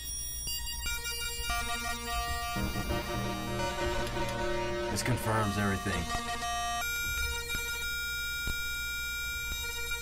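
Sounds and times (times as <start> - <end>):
synthesizer sustained tones: 1.5 - 7.5
low steady drone: 2.4 - 6.8.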